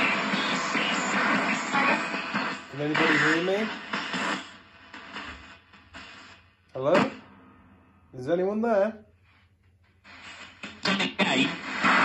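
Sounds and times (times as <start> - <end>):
spirit box radio static bursts: 0.0 - 7.2, 10.1 - 12.0.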